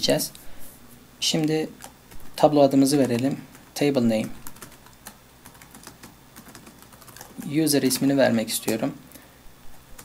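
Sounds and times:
keyboard typing: 0:01.4 - 0:08.8.

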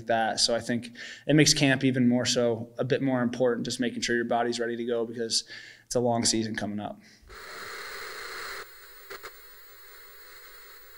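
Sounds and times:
tv static hiss: 0:07.3 - 0:10.9
short clicks: 0:09.0 - 0:09.4.

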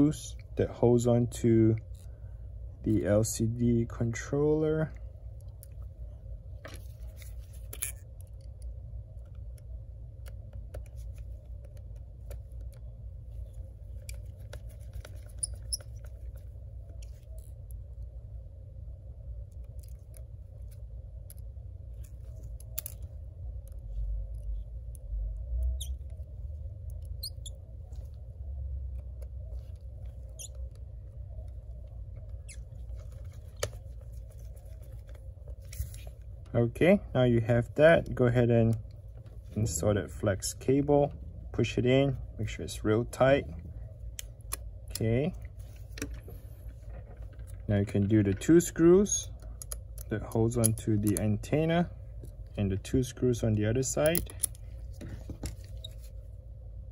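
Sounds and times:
steady low hum: 0:00.0 - 0:56.9
screwdriver clicks and scratches: 0:19.6 - 0:25.0.

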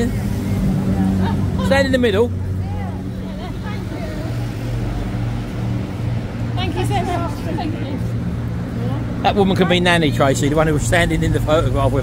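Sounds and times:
road traffic engine hum: 0:00.0 - 0:12.0.

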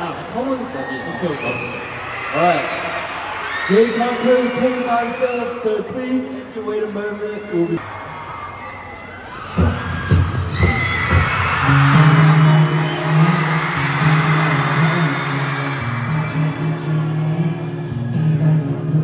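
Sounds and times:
audience screaming and cheering: 0:00.0 - 0:19.0
live concert music: 0:00.0 - 0:19.0.

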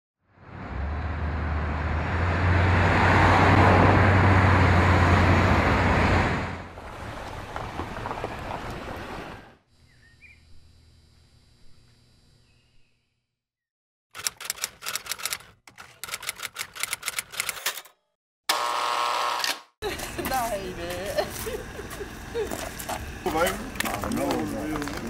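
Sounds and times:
car road and engine noise: 0:00.2 - 0:09.5.

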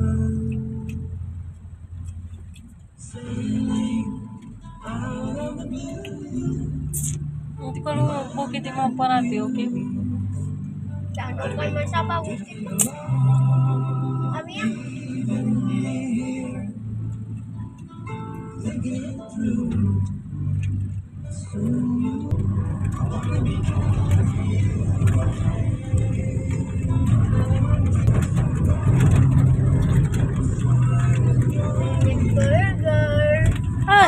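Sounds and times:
engine and road noise: 0:00.0 - 0:34.0
song on car stereo: 0:00.0 - 0:34.0
voices: 0:03.0 - 0:10.4, 0:11.2 - 0:16.7, 0:23.0 - 0:34.0.

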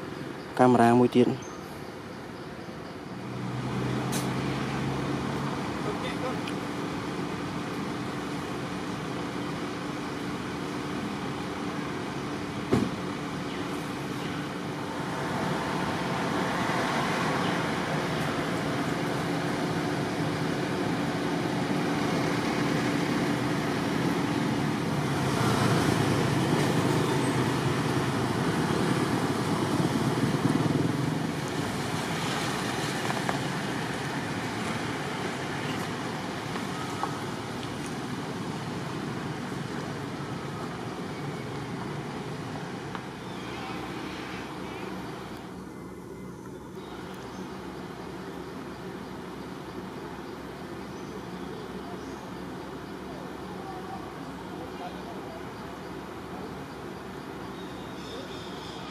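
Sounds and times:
outdoor background noise: 0:00.0 - 0:58.9
vehicle engine hum: 0:00.0 - 0:58.9.

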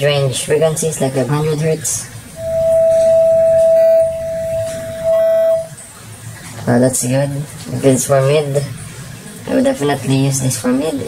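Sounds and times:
sine test tone: 0:02.4 - 0:05.8.

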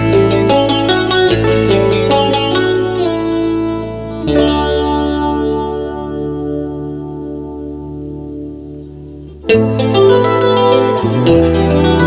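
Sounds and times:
blues electric guitar chords: 0:00.0 - 0:12.0.

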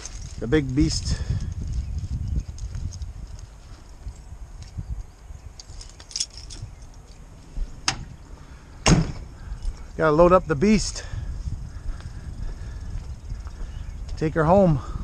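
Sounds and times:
rummaging through backpack: 0:00.0 - 0:00.9
keys jingling: 0:00.0 - 0:01.8, 0:02.4 - 0:07.3, 0:09.4 - 0:09.9.

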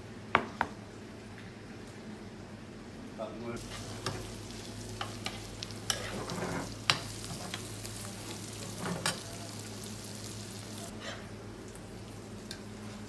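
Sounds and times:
offal sizzling in a frying pan: 0:03.6 - 0:13.0.

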